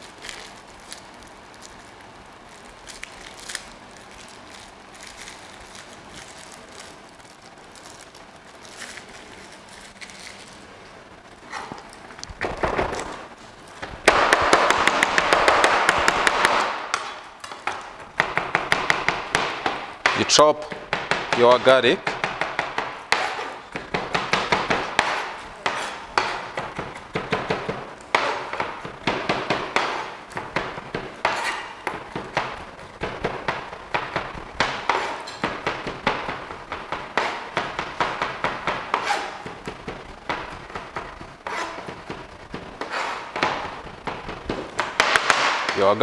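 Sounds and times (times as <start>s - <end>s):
knife chopping on cutting board: 14.1s - 45.8s.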